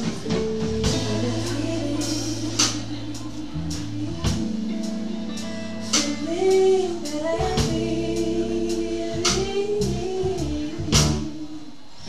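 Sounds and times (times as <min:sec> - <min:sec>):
woman singing into a microphone: 0:00.0 - 0:05.2, 0:05.8 - 0:12.0
band playing: 0:00.0 - 0:11.7.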